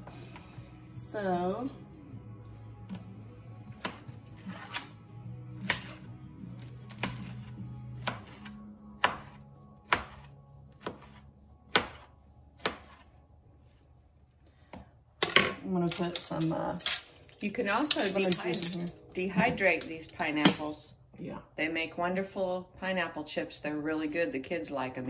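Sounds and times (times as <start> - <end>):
soft background music: 0.0 - 25.0.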